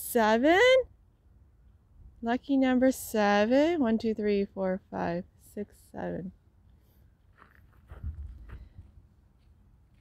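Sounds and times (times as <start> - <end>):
footsteps on gravel: 7.2 - 10.0.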